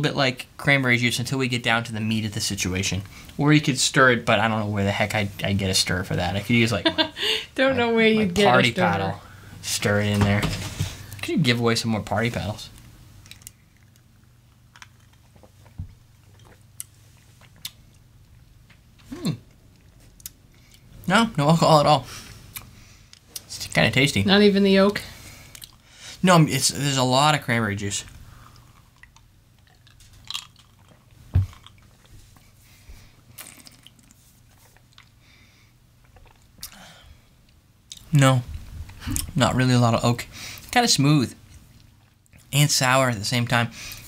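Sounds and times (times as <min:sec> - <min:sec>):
low room hum: 0:00.0 - 0:44.0
lip smacks and swallowing: 0:36.0 - 0:36.8
person sipping a drink: 0:36.0 - 0:37.0.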